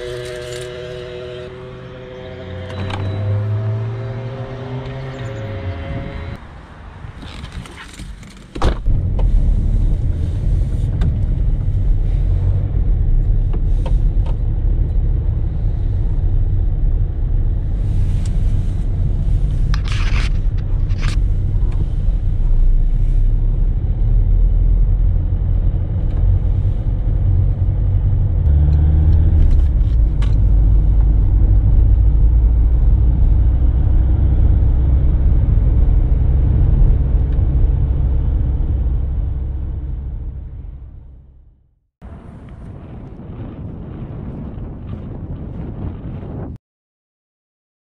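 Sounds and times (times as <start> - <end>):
car engine starting and running: 0.0 - 42.6.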